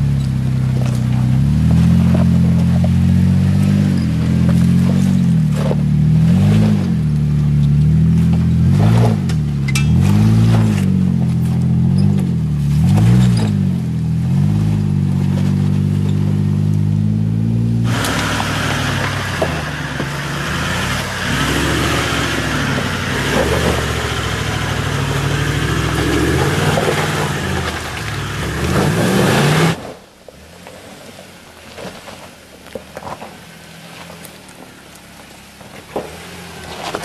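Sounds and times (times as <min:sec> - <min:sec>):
engine running low: 0:00.0 - 0:37.0
off-road vehicle engine revving: 0:00.0 - 0:37.0.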